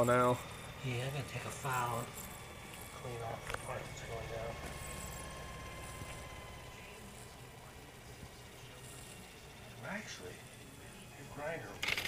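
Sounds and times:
electric motor hum with high whine: 0.0s - 12.0s.

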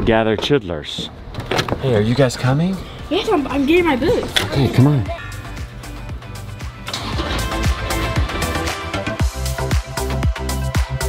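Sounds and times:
background music with sustained tones: 2.7s - 11.0s.

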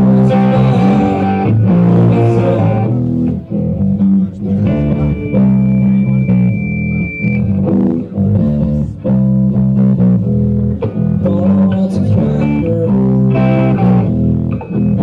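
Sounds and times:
bass guitar: 0.0s - 15.0s
electric guitar: 0.0s - 15.0s
live rock band playing: 0.0s - 15.0s.

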